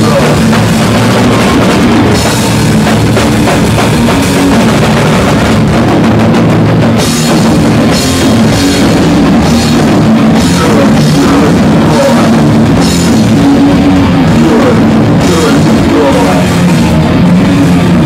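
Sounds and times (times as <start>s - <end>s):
hardcore band playing live: 0.0s - 18.0s.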